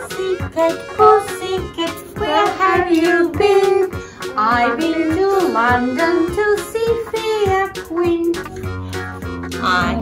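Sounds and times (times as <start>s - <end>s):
children's music: 0.0s - 10.0s
steady beat: 0.0s - 10.0s.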